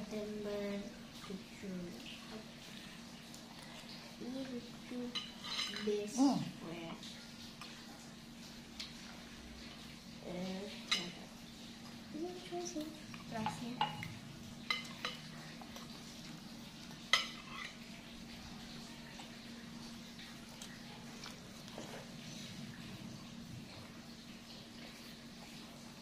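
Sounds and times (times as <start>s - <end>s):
cutlery clinking on glass bowl: 5.1s - 6.0s, 13.4s - 14.1s.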